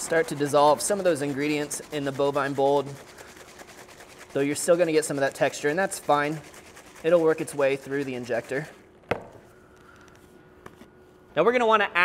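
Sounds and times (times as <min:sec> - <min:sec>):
plastic cup knocking on wooden table: 0:09.1 - 0:09.4.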